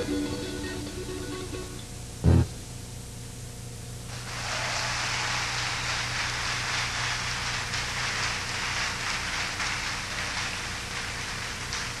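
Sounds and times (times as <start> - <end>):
low electrical hum: 0.0 - 12.0
audience applauding: 4.1 - 12.0.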